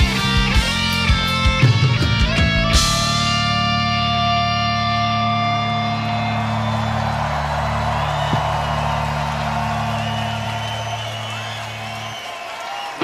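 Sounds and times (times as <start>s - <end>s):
distorted guitars holding chord: 0.0s - 7.9s
crowd cheering and whistling: 2.7s - 13.0s.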